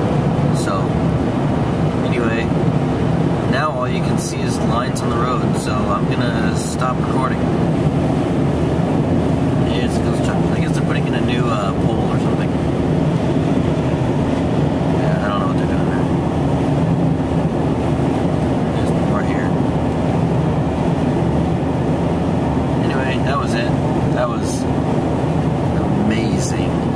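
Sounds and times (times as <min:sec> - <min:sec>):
car engine and road noise: 0:00.0 - 0:26.9.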